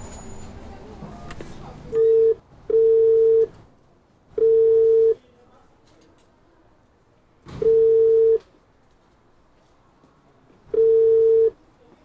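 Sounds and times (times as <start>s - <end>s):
telephone ringback tone: 2.0s - 3.5s, 4.4s - 5.2s, 7.6s - 8.4s, 10.7s - 11.6s.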